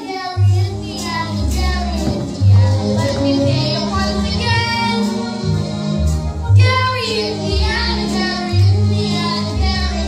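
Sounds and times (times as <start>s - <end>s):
child singing: 0.0s - 5.2s, 6.6s - 10.0s
instrumental accompaniment with bass: 0.4s - 10.0s.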